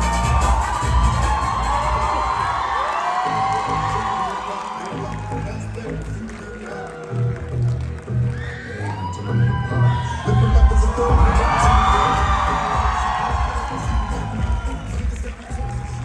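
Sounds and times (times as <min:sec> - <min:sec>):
crowd cheering: 0:00.0 - 0:16.0
dance music over loudspeakers: 0:00.0 - 0:16.0.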